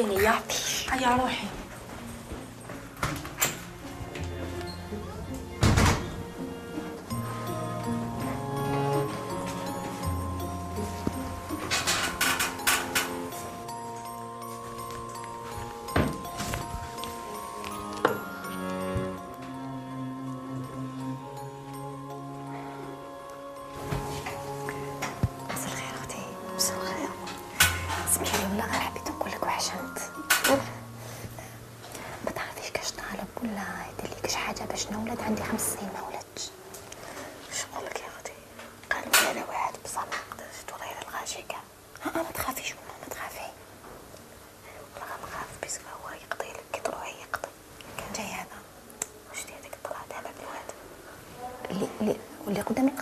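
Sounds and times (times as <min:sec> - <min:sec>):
soft background music: 0:00.0 - 0:53.0
person whispering: 0:49.3 - 0:50.8.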